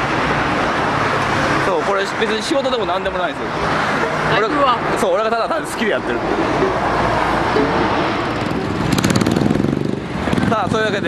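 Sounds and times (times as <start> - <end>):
street traffic: 0.0 - 11.0
vehicle engine pulsing: 6.0 - 11.0.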